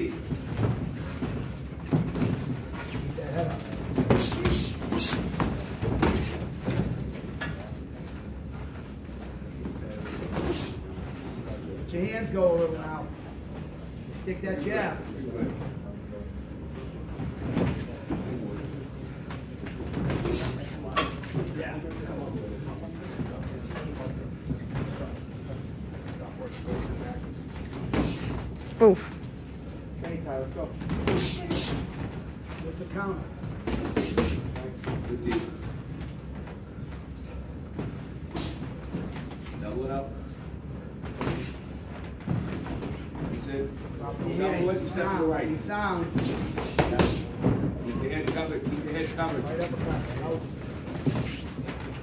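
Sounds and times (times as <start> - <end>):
footwork on ring canvas: 0.0 - 52.0.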